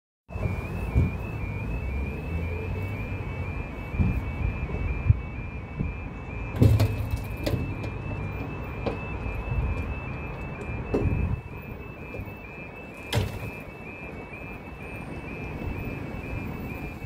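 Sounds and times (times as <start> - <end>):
level crossing alarm warbling: 0.3 - 17.0
road traffic rumbling: 0.3 - 17.0
knocks and clatter: 6.5 - 11.4.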